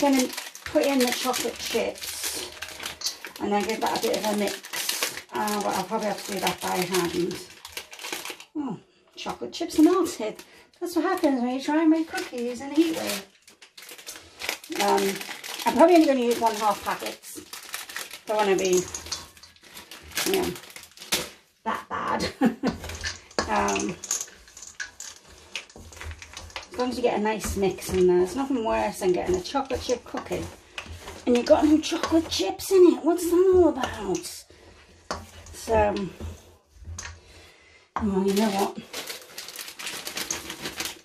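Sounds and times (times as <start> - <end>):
chips pouring into bowl: 0.0 - 8.5, 12.0 - 21.3, 22.8 - 28.0, 38.3 - 41.0
plastic packet crinkling: 0.0 - 8.6, 9.7 - 21.5, 22.7 - 33.4, 38.2 - 41.0
person speaking: 10.9 - 13.3, 14.7 - 17.4, 18.2 - 18.9, 20.2 - 20.6, 23.4 - 24.1, 26.7 - 30.6, 31.2 - 34.4, 38.0 - 38.9.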